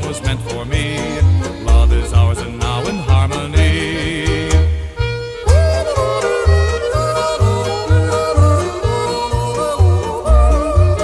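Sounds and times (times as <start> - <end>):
polka band music: 0.0 - 11.0.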